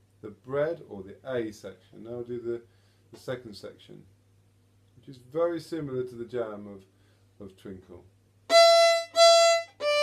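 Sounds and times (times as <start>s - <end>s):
bowed violin notes: 8.5s - 10.0s.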